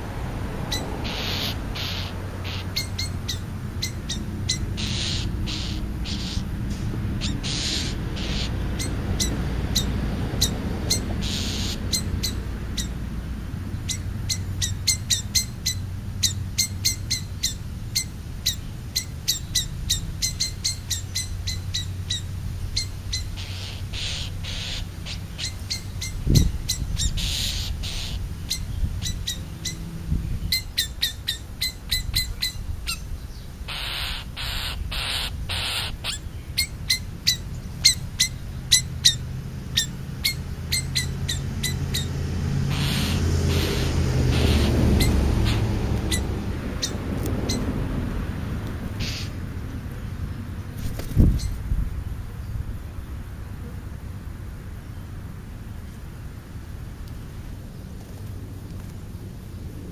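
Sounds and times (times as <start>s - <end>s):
small bird chirping: 0.7s - 6.5s, 7.2s - 13.0s, 13.8s - 47.7s.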